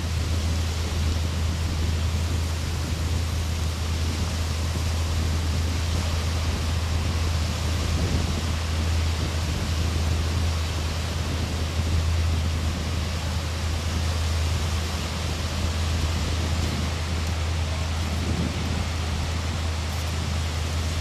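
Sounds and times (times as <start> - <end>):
waves washing ashore: 0.0 - 21.0
wind buffeting microphone: 0.0 - 21.0.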